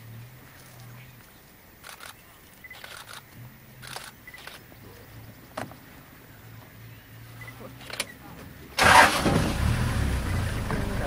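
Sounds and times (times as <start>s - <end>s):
vehicle engine starting and running: 7.3s - 11.0s.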